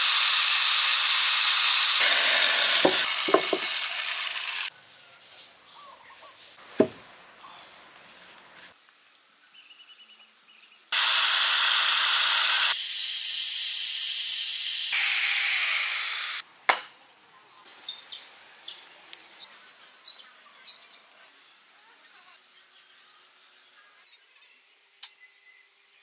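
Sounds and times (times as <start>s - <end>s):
electric chainsaw cutting log: 0.0s - 4.7s, 11.0s - 16.4s.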